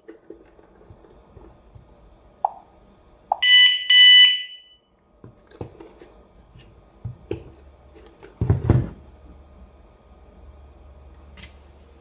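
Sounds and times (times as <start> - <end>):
alarm siren beeps: 3.3 - 4.9.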